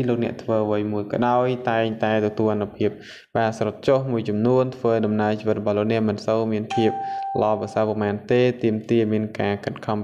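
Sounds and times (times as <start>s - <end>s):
person reading aloud: 0.0s - 10.0s
doorbell-like chime: 6.7s - 7.9s.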